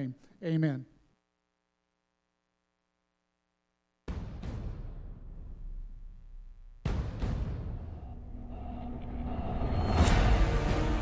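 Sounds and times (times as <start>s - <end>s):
loud cinematic hit: 4.1s - 11.0s.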